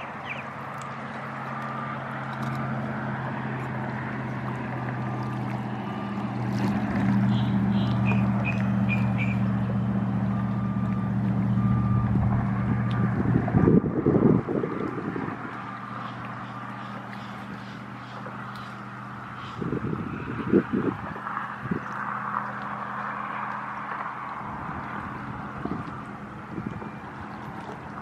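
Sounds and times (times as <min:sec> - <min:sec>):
distant motor drone: 0:00.0 - 0:28.0
loud buffeting rumble: 0:00.0 - 0:28.0.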